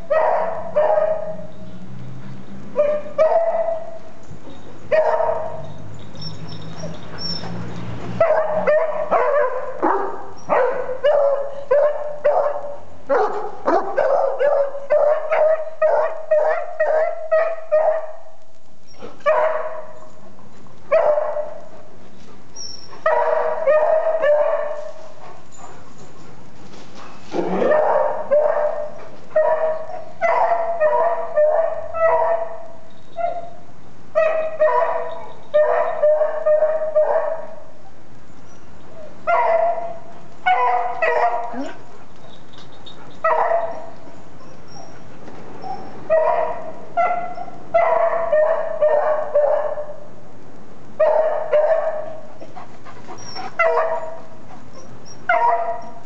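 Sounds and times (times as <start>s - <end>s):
dog barking: 0.0s - 1.4s, 2.8s - 3.9s, 4.9s - 5.6s, 8.2s - 18.3s, 19.2s - 20.0s, 20.9s - 21.6s, 23.0s - 24.8s, 27.4s - 33.5s, 34.2s - 37.6s, 39.3s - 41.8s, 43.2s - 43.9s, 45.6s - 50.0s, 51.0s - 52.3s, 53.5s - 54.2s, 55.3s - 56.0s.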